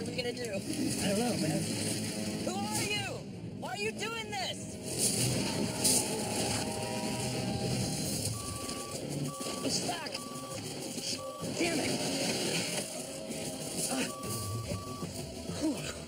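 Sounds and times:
vehicle engine running: 0.0 - 3.5, 4.1 - 16.0
censor bleeps: 6.7 - 11.7, 13.9 - 15.1.

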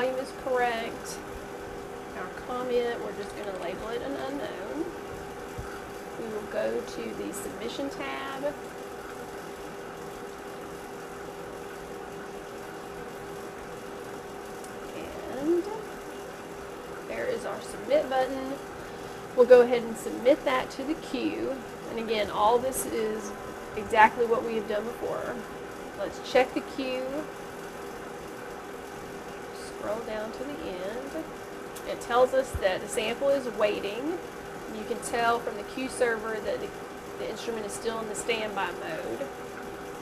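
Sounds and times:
faint constant tone: 0.0 - 40.0
steady mid-pitched hum: 0.0 - 40.0.

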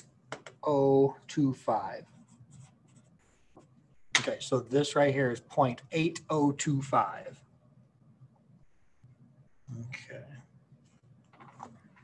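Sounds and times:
pen scratching on paper: 2.1 - 4.1.

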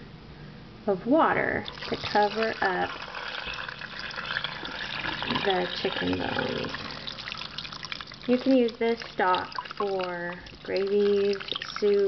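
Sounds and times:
water pouring into a pot: 1.6 - 12.0.

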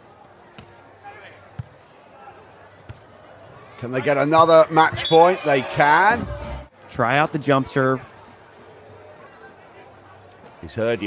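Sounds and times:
faint crowd murmur: 0.0 - 11.0.

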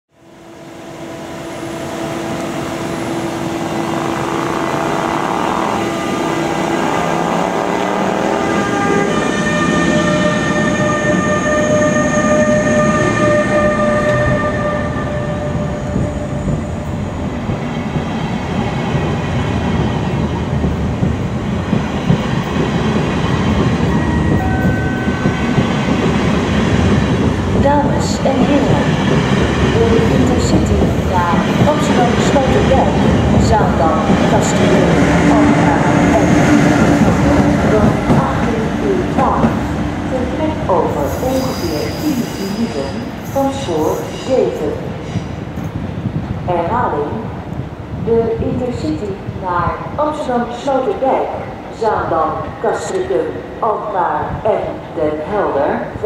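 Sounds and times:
electric locomotive drive whining: 0.1 - 56.0
wheels rumbling on rails: 0.4 - 51.4.

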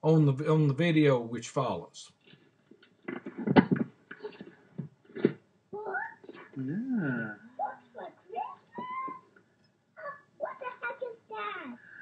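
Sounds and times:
young child whining: 5.8 - 9.3
person saying yeah: 6.6 - 7.5.

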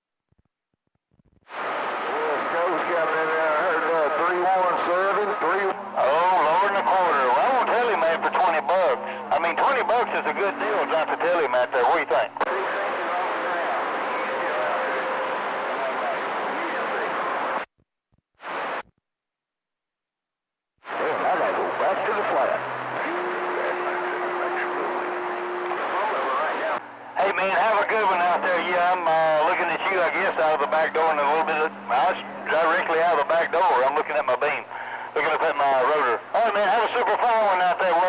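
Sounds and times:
hissy radio static: 1.4 - 17.7, 18.4 - 18.8, 20.8 - 38.0
distorted warbling radio voice: 1.5 - 17.6, 20.9 - 38.0.

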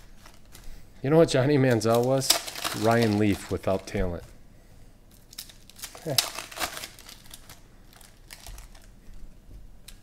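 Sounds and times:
foil wrappers crinkling and tearing: 0.0 - 0.8, 1.4 - 4.3, 5.1 - 9.1.

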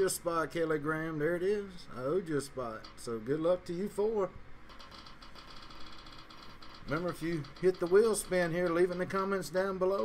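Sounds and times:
rapid ticking of spinning wheel app: 2.3 - 4.0, 4.6 - 10.0.

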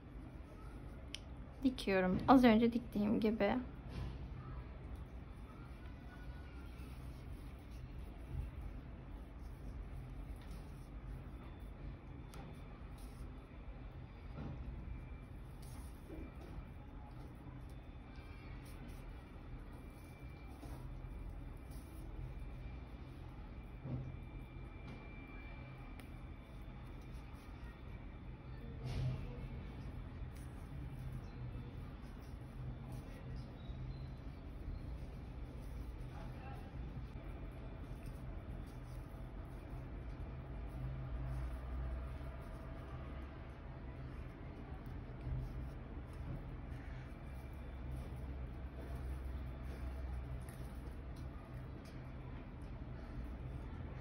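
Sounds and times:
faint handling sounds: 0.0 - 54.0
low background hum: 0.0 - 54.0.

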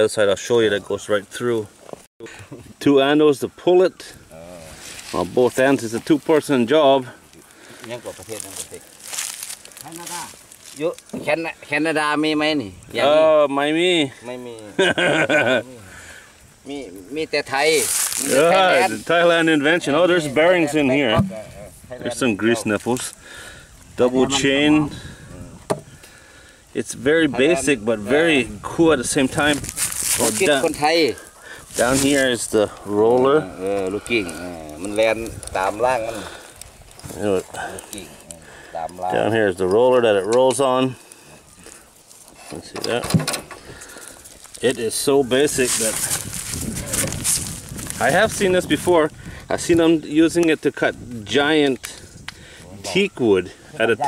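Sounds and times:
voices talking quietly: 0.0 - 54.0.

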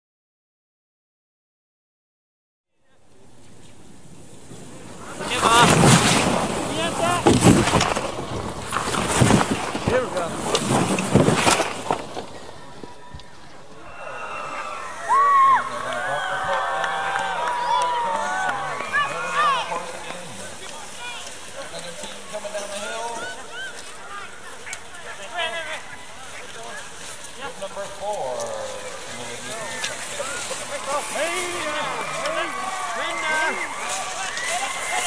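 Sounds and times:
noisy outdoor crowd: 2.7 - 35.0
skis and poles hissing on snow: 3.2 - 13.6, 14.8 - 35.0
shouts of encouragement: 13.8 - 20.1, 29.6 - 35.0.

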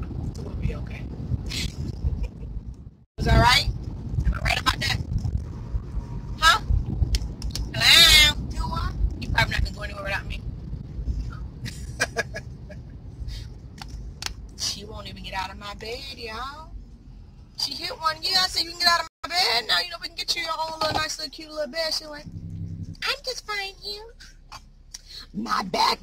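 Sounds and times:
low road rumble: 0.0 - 26.0
voices in car cabin: 0.4 - 1.1, 3.2 - 5.1, 6.4 - 6.7, 7.5 - 10.4, 14.2 - 16.8, 17.6 - 26.0.

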